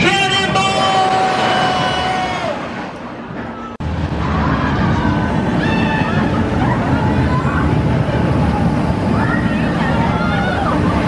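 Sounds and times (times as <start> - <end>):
rumble of coaster train: 0.0 - 11.0
high squeal of coaster train: 3.4 - 7.9.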